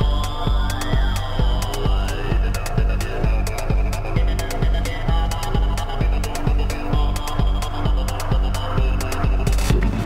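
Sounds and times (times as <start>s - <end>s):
bassline: 0.0s - 10.0s
steady kick drum: 0.0s - 10.0s.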